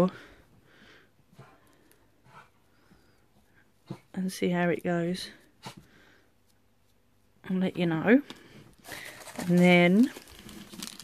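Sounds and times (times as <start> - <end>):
dog sniff: 5.5 - 6.1.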